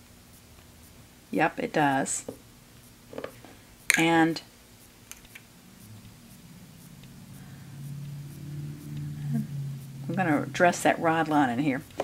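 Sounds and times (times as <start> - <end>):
woman humming softly: 5.9 - 10.2.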